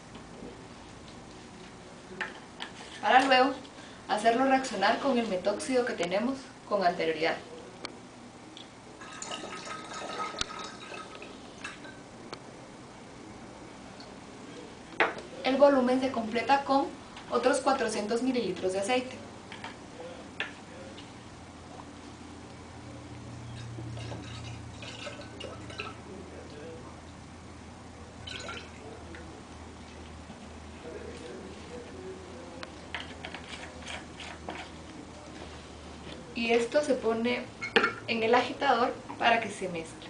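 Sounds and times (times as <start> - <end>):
liquid pouring into glass flask: 9.0 - 11.4, 28.2 - 28.9.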